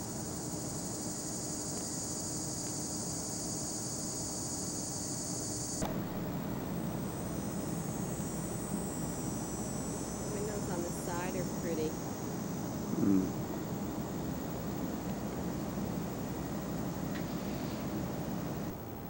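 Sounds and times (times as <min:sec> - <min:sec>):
high-pitched insect drone: 0:00.0 - 0:17.1.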